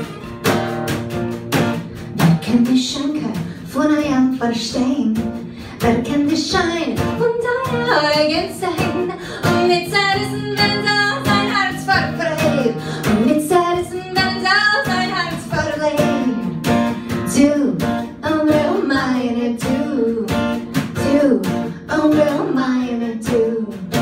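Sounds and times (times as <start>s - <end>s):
strummed acoustic guitar: 0.0s - 24.0s
woman singing: 2.1s - 24.0s.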